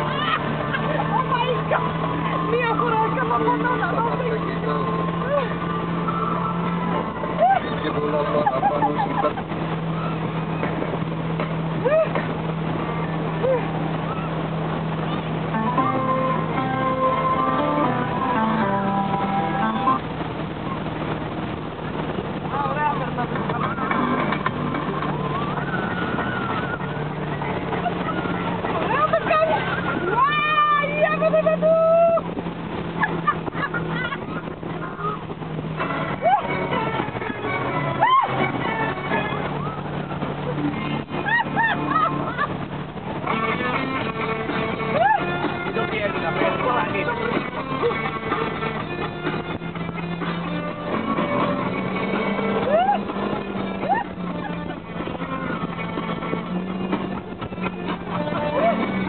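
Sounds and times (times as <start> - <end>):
churning wake and spray: 0.0 - 59.0
motorboat engine running: 0.0 - 59.0
water rushing: 0.0 - 59.0
people shouting: 27.7 - 32.3, 37.9 - 39.9, 44.9 - 45.5, 52.6 - 53.1.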